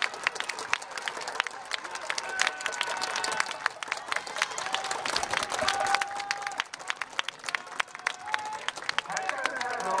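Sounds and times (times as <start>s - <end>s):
crowd applause: 0.0s - 10.0s
voices: 7.6s - 10.0s.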